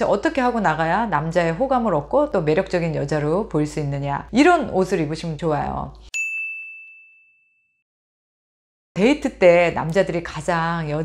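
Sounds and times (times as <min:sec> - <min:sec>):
bell-like ding: 0:06.1 - 0:07.8.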